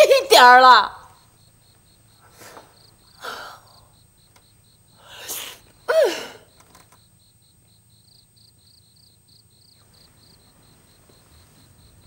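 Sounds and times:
crickets chirping: 0.0 - 12.0
woman sobbing breath: 3.2 - 3.9, 5.0 - 6.5.

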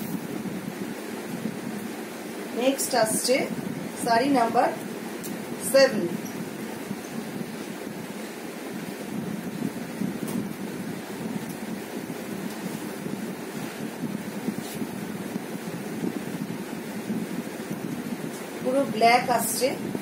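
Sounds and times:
steady rushing noise: 0.0 - 20.0.

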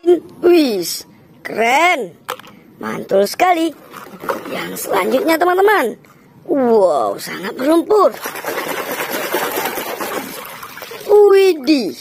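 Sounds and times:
water splashing and sloshing: 3.4 - 5.9, 7.5 - 12.0.

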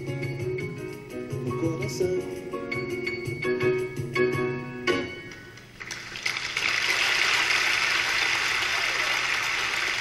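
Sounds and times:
audience applause: 5.8 - 10.0.

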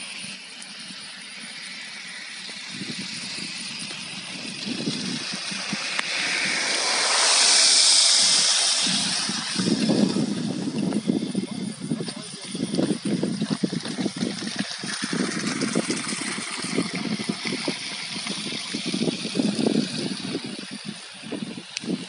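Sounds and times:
car tyres hissing on wet slush: 0.0 - 22.0.

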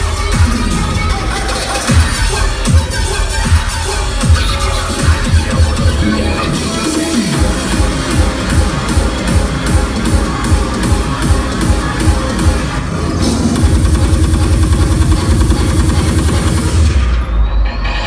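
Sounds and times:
heavy bass: 0.0 - 18.0
loud dubstep music: 0.0 - 18.0.

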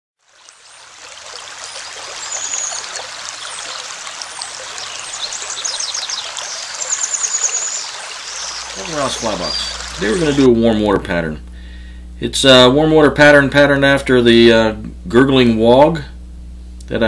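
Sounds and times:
babbling stream: 0.2 - 10.7
high quick chirping trills: 1.6 - 10.5.

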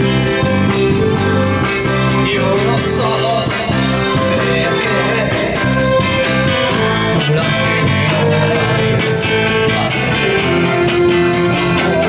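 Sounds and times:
live pop-rock band: 0.0 - 12.0.

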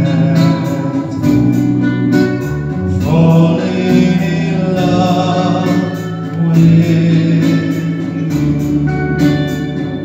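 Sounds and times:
man singing: 0.0 - 1.5, 2.8 - 9.2
guitar accompaniment: 0.0 - 10.0.

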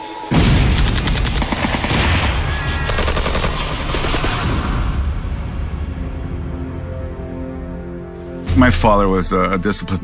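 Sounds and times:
automatic gunfire: 0.7 - 4.5.

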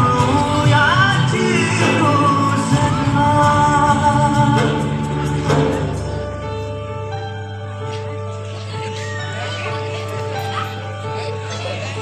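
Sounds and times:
song with singer and instruments: 0.0 - 12.0.

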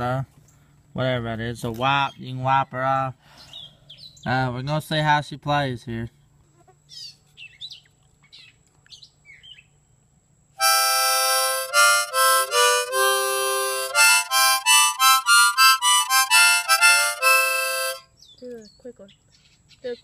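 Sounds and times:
faint bird chirps: 3.3 - 4.5, 6.1 - 9.9, 18.0 - 20.0
harmonica chords: 10.6 - 18.1.

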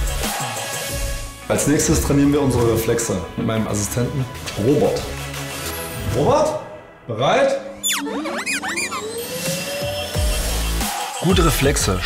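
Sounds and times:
robot vacuum electronic chirps: 7.8 - 10.2
rising tone: 7.8 - 10.3.

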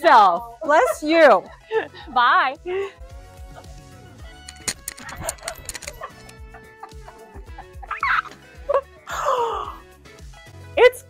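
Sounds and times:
background music: 0.0 - 11.0
woman laughing: 5.0 - 8.9.

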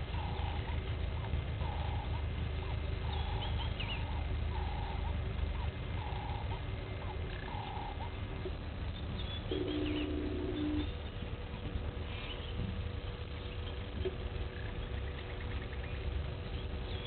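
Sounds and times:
birds calling: 0.0 - 17.0
low steady rumble: 0.0 - 17.0
higher bird chirps: 1.5 - 8.2, 8.9 - 17.0.

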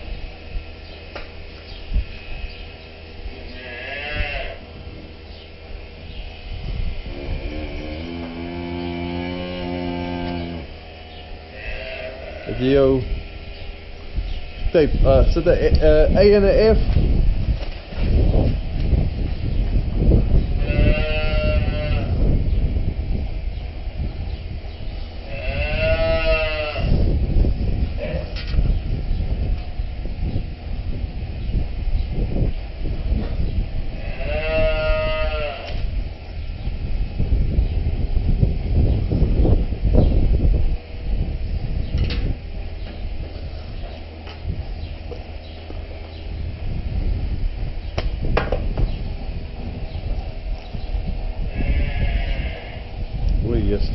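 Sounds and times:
steady low rumble: 0.0 - 53.9
cows mooing: 3.4 - 4.7, 7.0 - 10.8, 11.5 - 13.0, 20.6 - 22.2, 25.2 - 27.1, 33.9 - 35.8.

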